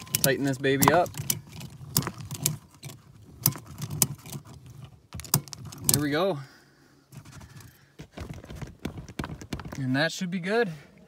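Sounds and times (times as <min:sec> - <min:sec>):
ratchet strap buckle clicking: 0:00.0 - 0:06.1.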